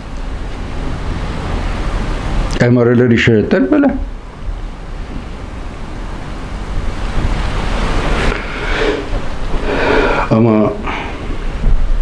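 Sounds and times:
steady rushing noise: 0.0s - 12.0s
low microphone rumble: 4.0s - 12.0s.

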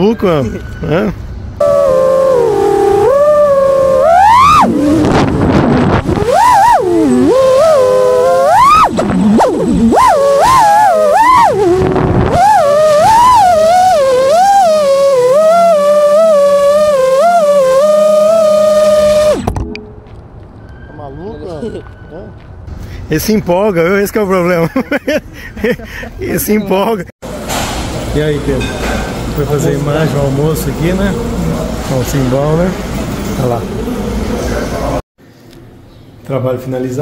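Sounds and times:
drone motors whining: 0.6s - 20.9s
person laughing: 24.6s - 26.4s.

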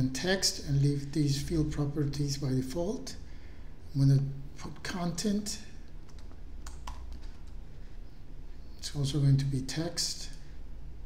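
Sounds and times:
computer keyboard typing: 6.0s - 7.6s.

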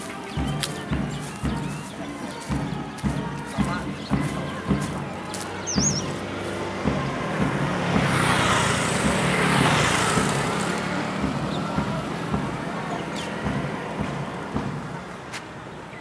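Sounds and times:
motorbike passing by: 5.1s - 14.4s.

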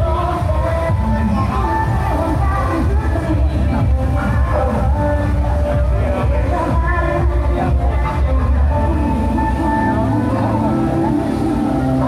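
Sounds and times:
dance music from loudspeaker: 0.0s - 12.0s.

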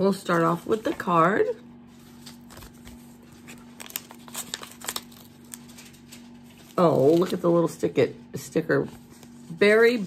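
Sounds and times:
paper envelope crinkling: 1.8s - 7.8s.

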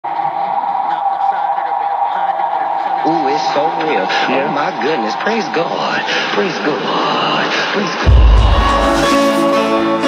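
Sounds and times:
faint radio-like voices: 0.0s - 8.1s.

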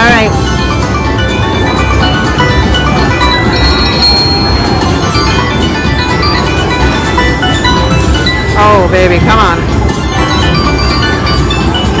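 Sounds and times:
electronic slot machine music: 0.0s - 12.0s
slot machine reels spinning: 0.0s - 12.0s.

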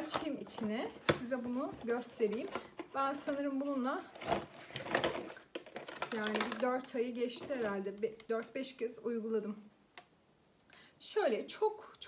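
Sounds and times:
rustling of packaging: 0.0s - 8.7s.

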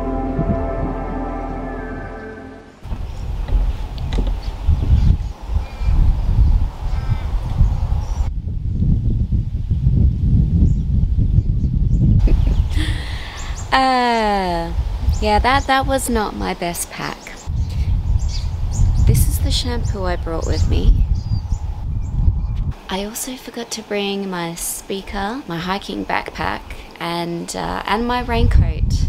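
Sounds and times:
wind buffeting microphone: 0.0s - 1.6s, 2.8s - 23.2s, 25.0s - 27.0s, 27.6s - 29.0s
soft ambient music: 0.0s - 2.8s
woman's voice: 12.8s - 17.5s, 19.1s - 21.0s, 22.9s - 29.0s.

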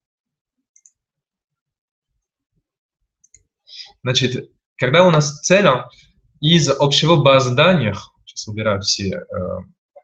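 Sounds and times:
computer mouse clicks: 0.7s - 1.0s, 3.2s - 3.5s
person breathing: 3.6s - 4.0s
person speaking: 3.7s - 9.8s.

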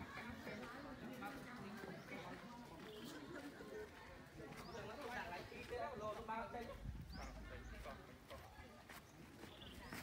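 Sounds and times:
people talking faintly: 0.0s - 10.0s.

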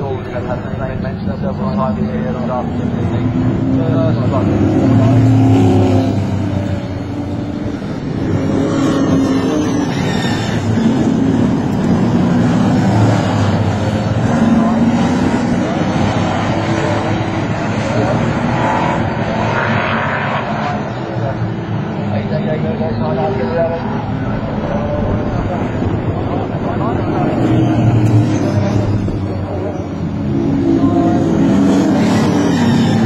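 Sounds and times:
racing car engines: 0.0s - 33.0s.

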